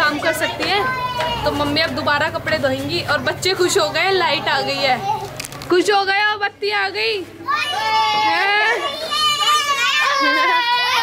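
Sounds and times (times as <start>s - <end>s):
children's excited voices: 0.0s - 1.6s, 7.4s - 11.0s
happy shout: 7.4s - 11.0s.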